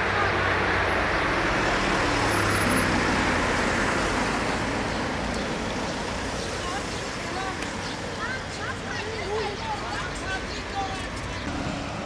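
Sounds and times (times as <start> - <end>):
vehicle engine and tyres on road: 0.0 - 12.0.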